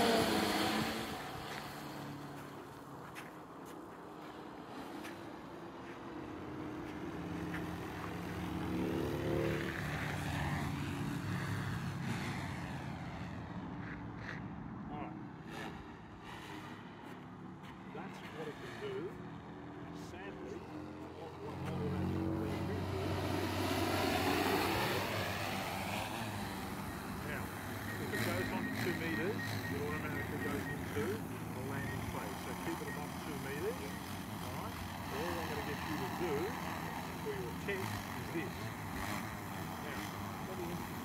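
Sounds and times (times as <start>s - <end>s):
drone rotors humming: 0.0s - 3.6s, 20.1s - 41.0s.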